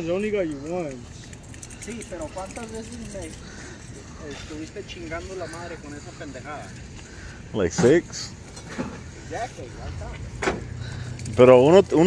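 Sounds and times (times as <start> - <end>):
distant men talking: 0.0 - 12.0
low outdoor background noise: 0.0 - 12.0.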